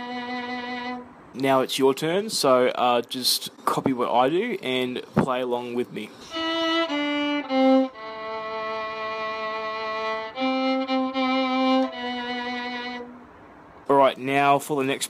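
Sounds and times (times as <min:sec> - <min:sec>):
solo violin bowed notes: 0:00.0 - 0:01.1, 0:06.3 - 0:13.3.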